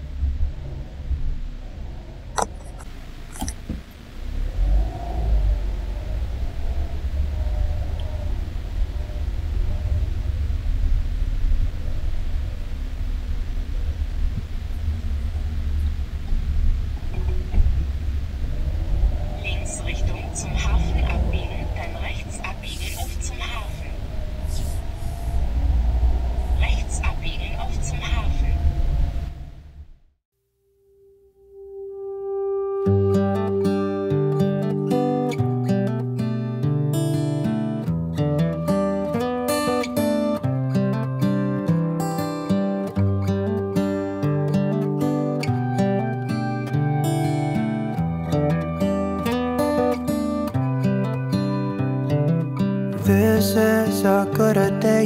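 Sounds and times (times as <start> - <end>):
wind buffeting microphone: 0.0 - 30.0
faint voices: 19.0 - 28.8.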